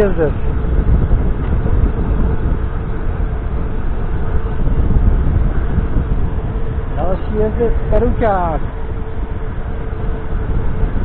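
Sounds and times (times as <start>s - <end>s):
faint steady whine: 0.0s - 11.0s
wind buffeting microphone: 0.0s - 11.0s.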